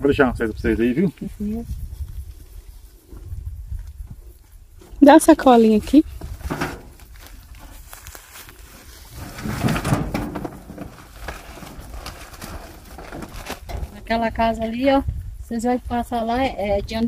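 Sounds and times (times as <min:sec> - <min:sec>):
wind rumble on microphone: 0:00.0 - 0:17.0
plastic rustling and knocks: 0:06.2 - 0:07.8, 0:09.1 - 0:14.1.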